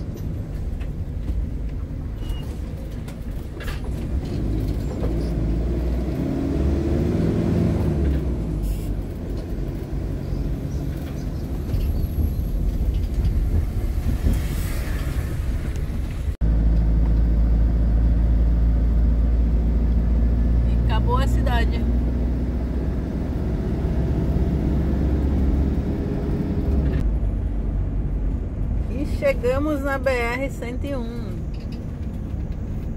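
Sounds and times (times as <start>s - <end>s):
road rumble: 0.0s - 32.9s.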